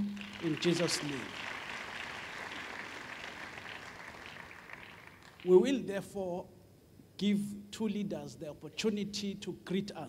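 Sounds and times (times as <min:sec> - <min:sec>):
audience applause: 0:00.0 - 0:05.6.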